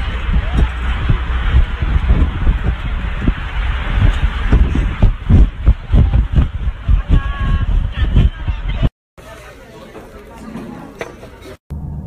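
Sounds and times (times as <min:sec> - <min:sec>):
wind buffeting microphone: 0:00.0 - 0:08.9.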